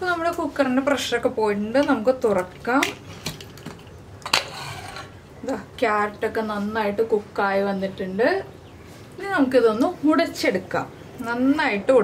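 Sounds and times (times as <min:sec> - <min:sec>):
metal lid scraping rim: 0:04.2 - 0:05.2.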